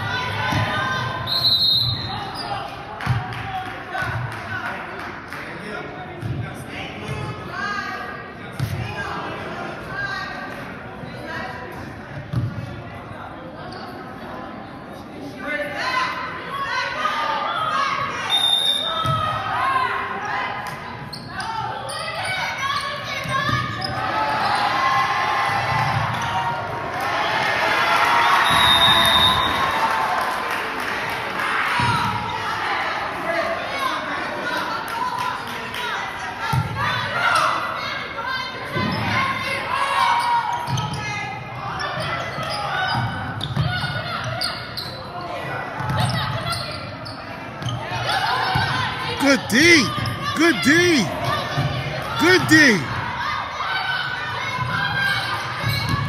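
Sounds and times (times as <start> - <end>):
voices echoing in a gym: 0.0 - 56.0.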